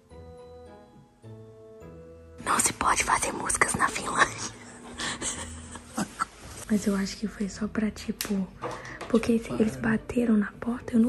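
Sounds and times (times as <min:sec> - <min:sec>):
person whispering: 0:02.5 - 0:04.6.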